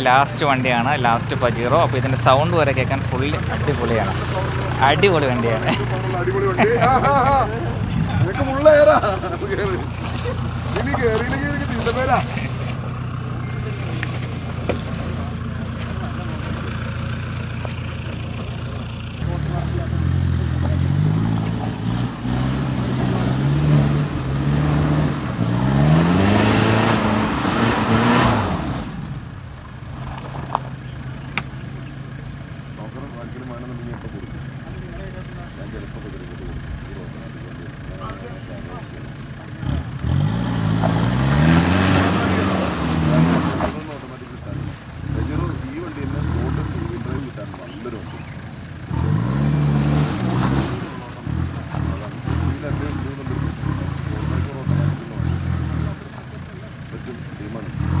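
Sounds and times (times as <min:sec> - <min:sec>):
car engine revving in mud: 0:00.0 - 0:58.0.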